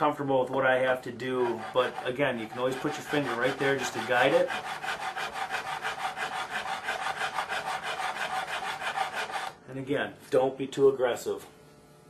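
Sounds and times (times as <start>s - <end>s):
file rasping on metal fret: 0.8s - 9.6s.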